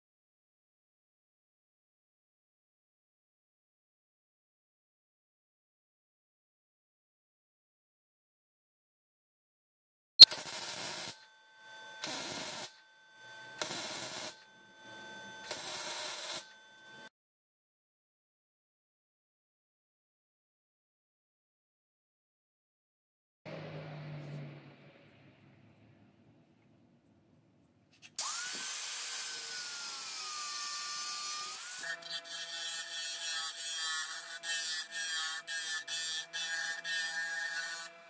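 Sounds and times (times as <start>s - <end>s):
angle grinder cutting steel: 10.2s - 17.1s, 28.2s - 38.0s
electric arc welding: 10.3s - 11.2s, 12.0s - 12.7s, 13.6s - 14.4s, 15.4s - 16.5s.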